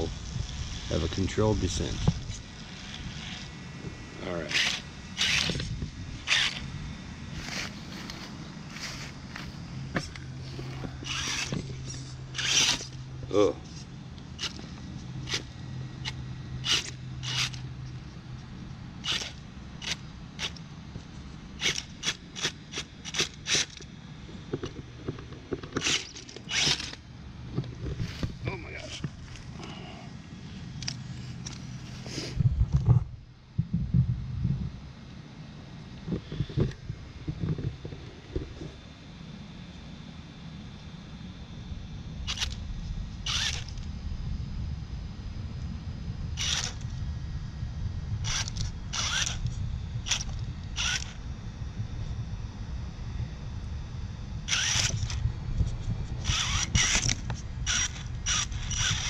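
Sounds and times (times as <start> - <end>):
tyres crackling on bark and leaves: 0.0 - 32.4
electric motor humming: 0.0 - 35.0, 35.6 - 59.0
low thumps: 32.4 - 34.8.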